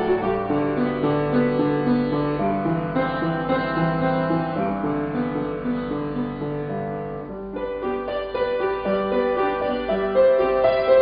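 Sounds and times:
upright piano solo: 0:00.0 - 0:11.0.

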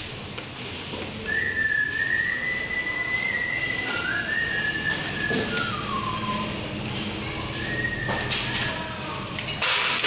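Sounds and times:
person whistling a tune: 0:01.2 - 0:06.7, 0:07.5 - 0:08.8.

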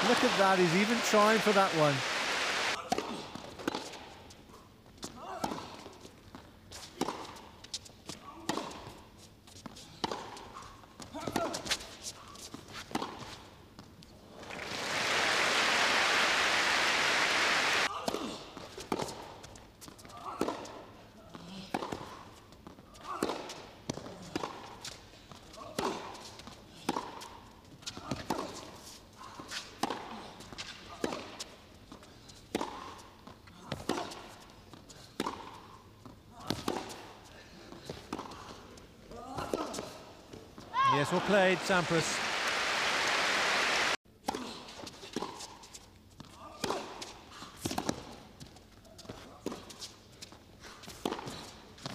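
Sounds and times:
audience applause: 0:00.0 - 0:02.8, 0:14.4 - 0:17.9, 0:40.8 - 0:44.0
tennis ball bouncing: 0:02.9 - 0:04.0, 0:08.5 - 0:09.0, 0:09.6 - 0:11.8, 0:12.8 - 0:13.9, 0:19.8 - 0:20.8, 0:25.8 - 0:27.4, 0:28.0 - 0:28.6, 0:29.5 - 0:37.1, 0:37.8 - 0:38.5, 0:44.3 - 0:48.1, 0:51.0 - 0:51.4
tennis racket hitting ball: 0:29.5 - 0:31.5, 0:32.5 - 0:33.0, 0:33.7 - 0:34.4, 0:35.2 - 0:35.7, 0:36.4 - 0:37.2.

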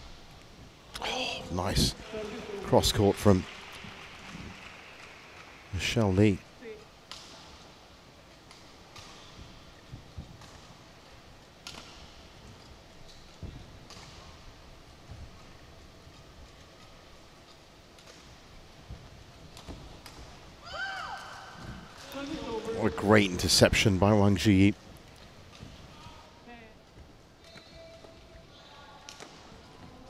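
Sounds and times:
racket striking shuttlecock: 0:11.6 - 0:12.2.

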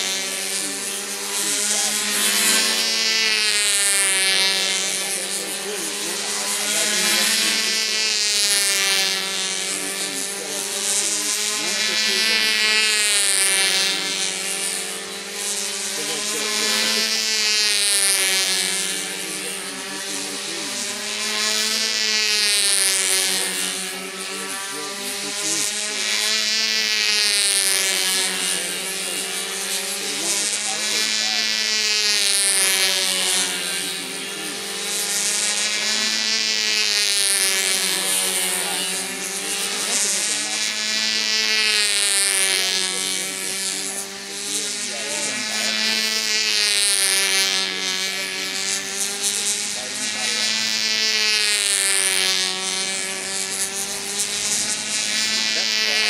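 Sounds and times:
model plane engine buzzing: 0:00.0 - 0:56.0.

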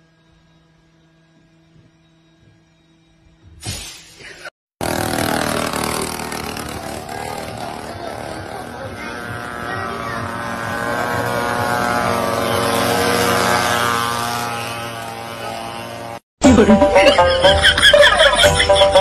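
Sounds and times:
mini motorbike engines running: 0:04.8 - 0:16.2.

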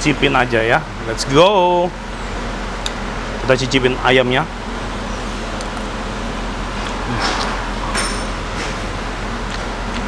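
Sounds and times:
kitchen fan whirring: 0:00.0 - 0:10.0.

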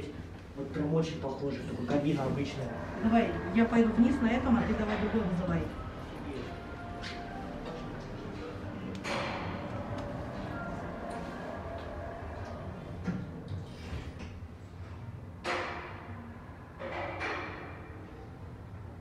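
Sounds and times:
background murmur: 0:00.0 - 0:14.0
lift car running down: 0:01.7 - 0:14.1
lift doors sliding shut: 0:01.9 - 0:14.5.

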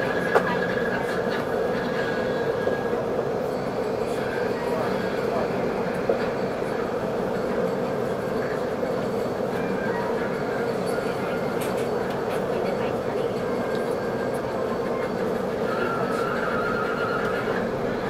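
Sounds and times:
train interior rumble and hum: 0:00.0 - 0:18.0.

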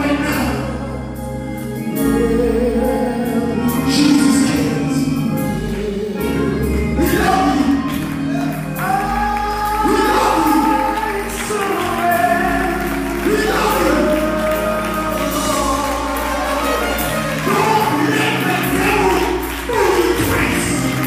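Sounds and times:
choir and instrumental backing: 0:00.0 - 0:21.0
man singing gospel: 0:00.0 - 0:21.0.

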